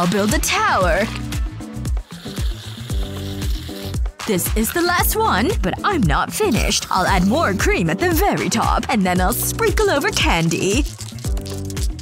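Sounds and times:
background music with bass line: 0.0s - 12.0s.

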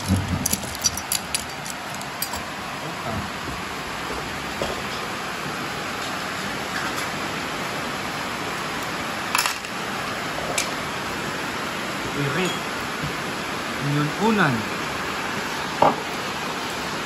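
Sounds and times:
rain hissing: 0.0s - 17.0s.

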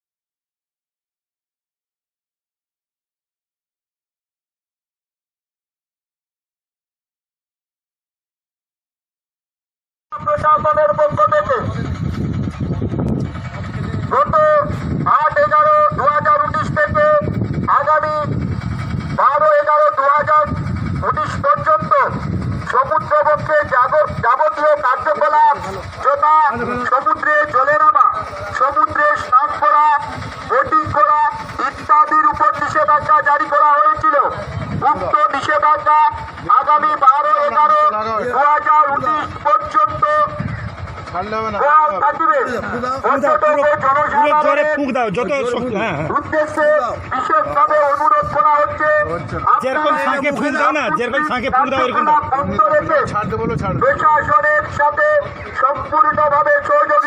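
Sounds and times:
engine noise: 10.1s - 57.0s
man announcing over loudspeaker: 10.1s - 57.0s
man talking: 10.2s - 12.0s, 13.5s - 18.4s, 19.1s - 57.0s
crowd rumble: 10.2s - 57.0s.

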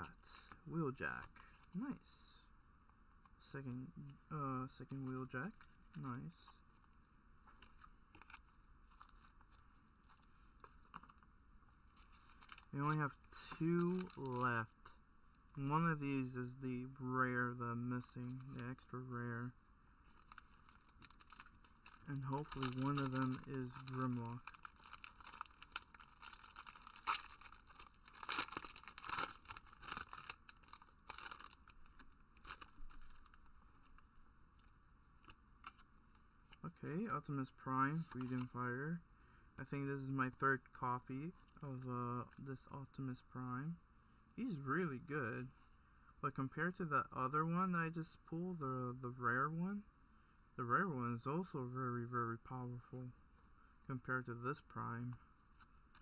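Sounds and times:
cards rustling: 11.9s - 14.6s, 20.1s - 34.0s
foil wrapper tearing and crinkling: 20.2s - 31.8s, 32.4s - 33.4s.

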